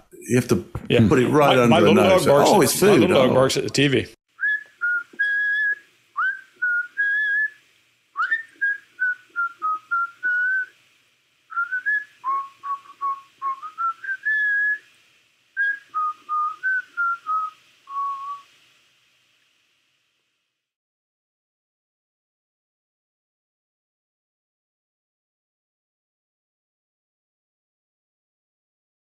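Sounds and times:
whistled melody: 4.4s - 7.6s, 8.2s - 10.7s, 11.5s - 14.9s, 15.6s - 18.5s.

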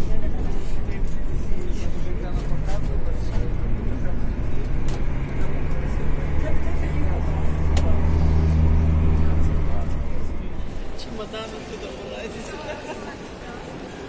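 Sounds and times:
bus engine droning: 0.0s - 14.0s.

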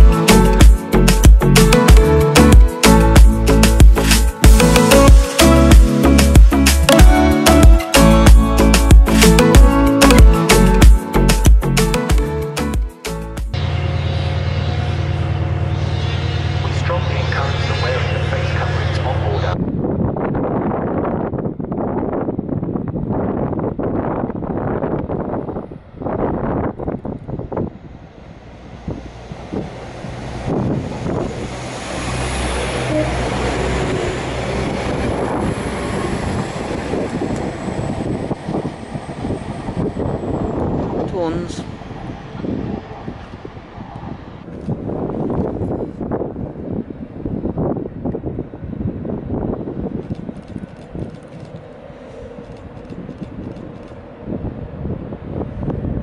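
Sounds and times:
train passing: 13.5s - 56.0s
short falling tone: 13.6s - 19.0s, 30.4s - 38.3s.

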